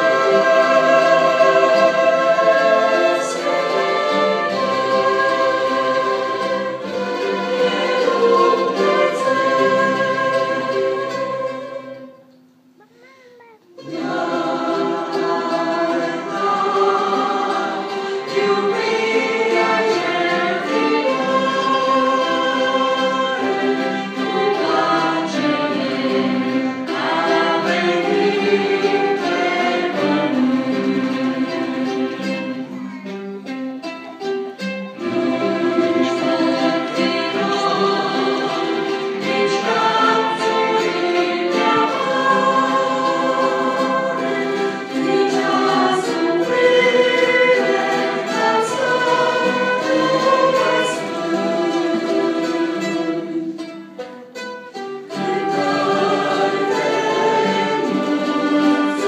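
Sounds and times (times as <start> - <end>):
choir singing: 0.0 - 12.4, 13.7 - 33.6, 34.9 - 59.0
orchestra of violins and flutes: 0.0 - 13.1, 13.7 - 59.0.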